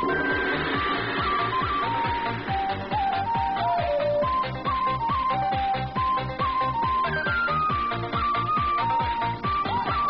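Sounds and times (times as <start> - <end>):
fast kick-drum beat: 0.0 - 10.0
simple synth melody: 0.0 - 10.0.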